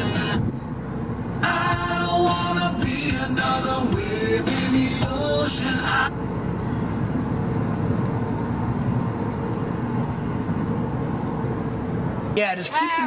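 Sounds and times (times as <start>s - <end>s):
car cabin road and engine noise: 0.0s - 13.0s.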